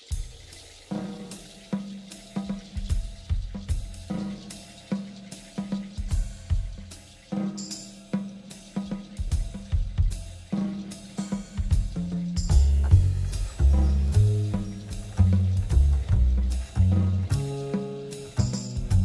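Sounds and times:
jazz drum groove: 0.0 - 19.0
low bass notes: 11.8 - 19.0.

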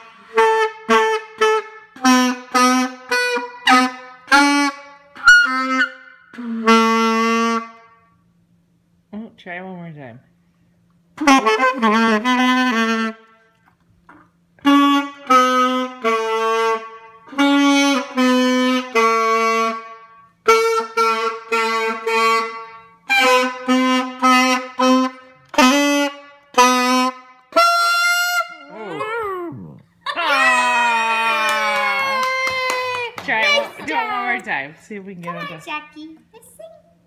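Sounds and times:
saxophone playing a tune: 0.0 - 7.9, 11.2 - 13.6, 14.6 - 29.7.

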